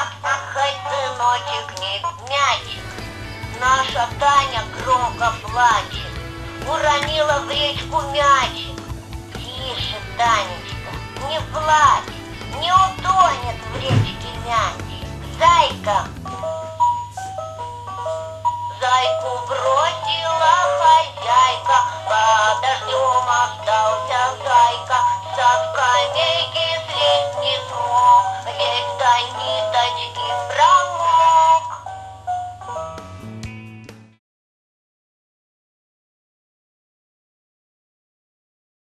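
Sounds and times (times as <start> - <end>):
simple electronic melody: 2.7 - 18.8, 32.0 - 33.9
high-pitched voice singing: 18.8 - 31.9.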